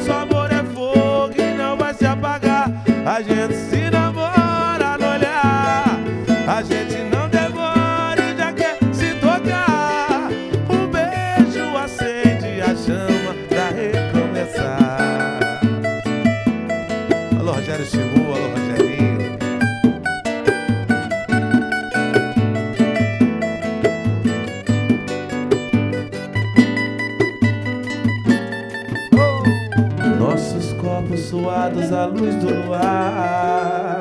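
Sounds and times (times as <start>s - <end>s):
plucked acoustic guitar: 0.0s - 34.0s
samba percussion beat: 0.0s - 34.0s.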